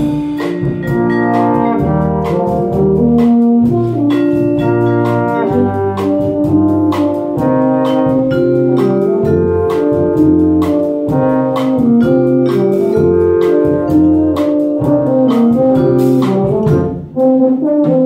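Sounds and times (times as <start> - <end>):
brass band playing: 0.0 - 18.0.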